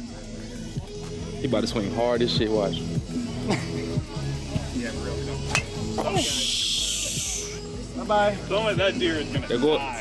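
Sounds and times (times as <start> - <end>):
steady high hiss: 5.9 - 7.7.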